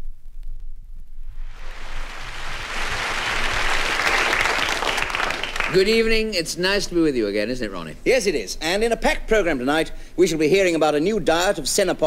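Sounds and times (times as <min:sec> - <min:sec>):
audience applauding: 0:01.6 - 0:06.0.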